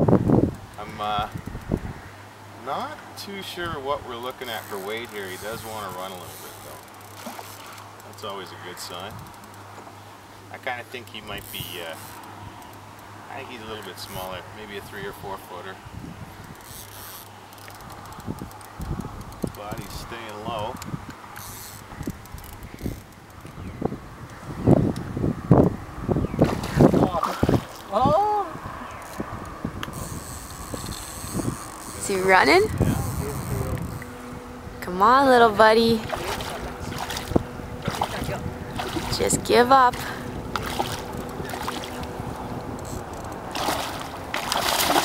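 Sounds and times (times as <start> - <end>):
wind noise on microphone: 0.0 - 2.1, 14.9 - 17.0, 17.8 - 45.0
fishing reel gears whirring: 4.2 - 9.7, 11.2 - 13.2, 16.4 - 23.5, 28.9 - 45.0
fish thrashing and splashing: 6.6 - 7.9, 26.4 - 27.9, 36.0 - 39.3, 40.0 - 45.0
fast light reel clicks: 16.5 - 23.5
splashy strokes: 26.4 - 27.8, 36.0 - 42.2, 43.5 - 45.0.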